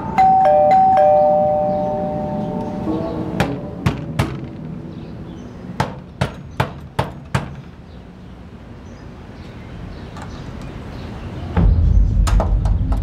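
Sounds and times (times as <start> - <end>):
two-note doorbell chime: 0.0 - 3.0.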